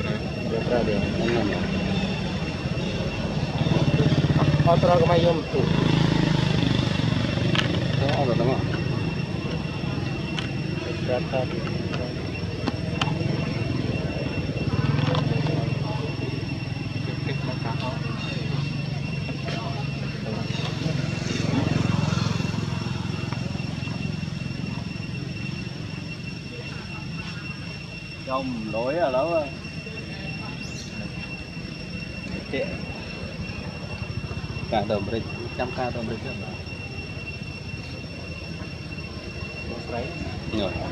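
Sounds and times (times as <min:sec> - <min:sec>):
engine idling: 0:00.0 - 0:40.9
thin high whine: 0:00.0 - 0:40.9.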